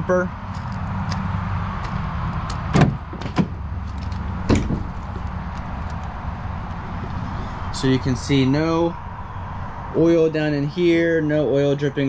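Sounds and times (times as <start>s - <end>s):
tailgate clunking down: 2.6s - 5.2s.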